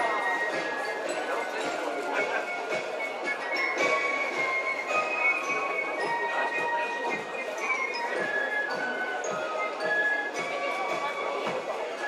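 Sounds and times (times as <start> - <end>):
shrill flutes: 0.0 - 12.0.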